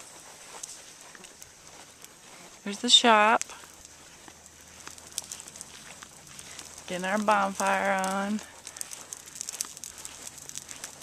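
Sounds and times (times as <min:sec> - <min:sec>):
faint clicks: 0:03.4 - 0:11.0.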